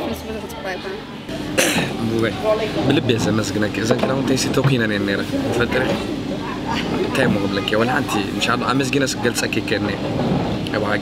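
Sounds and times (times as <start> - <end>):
low background hum: 0.0 - 11.0
man talking: 2.0 - 6.0, 7.1 - 10.0, 10.7 - 11.0.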